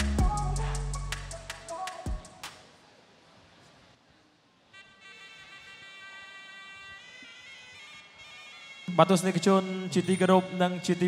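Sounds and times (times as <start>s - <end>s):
high held musical tone: 0.0s - 2.5s, 6.7s - 11.0s.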